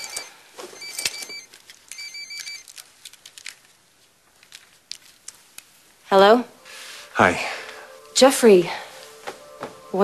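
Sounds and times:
phone ringtone beeps: 0.0 - 2.7.

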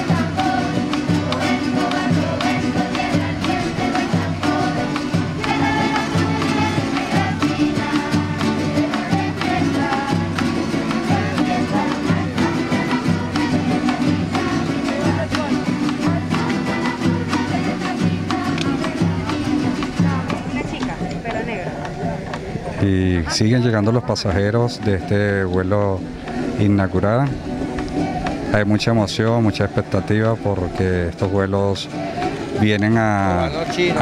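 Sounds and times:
steady drum beat: 0.0 - 22.7, 23.4 - 34.0
strummed small guitars: 0.0 - 22.8, 23.5 - 34.0.

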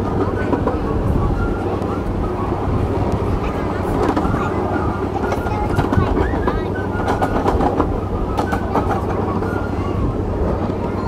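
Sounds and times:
miniature train rumbling: 0.0 - 11.0
wheels clicking on rails: 0.0 - 11.0.

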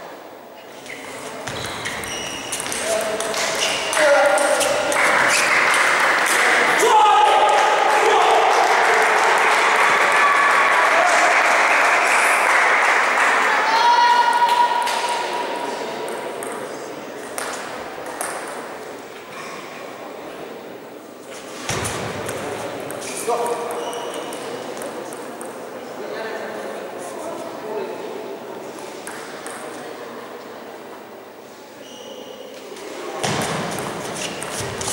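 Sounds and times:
voices echoing in a hall: 0.0 - 34.9.

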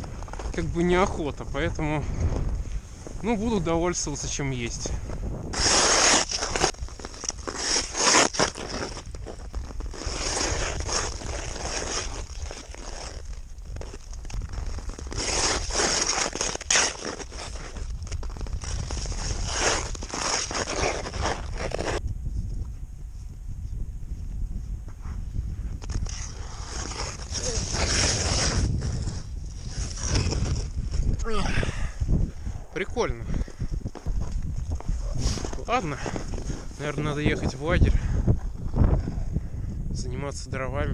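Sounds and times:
wind rumble on microphone: 0.0 - 40.9
ice skate blades scraping ice: 5.5 - 22.0, 25.8 - 31.1.

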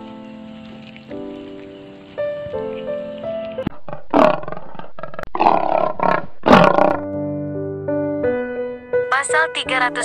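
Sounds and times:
soft background music: 0.0 - 3.7, 7.0 - 10.0.

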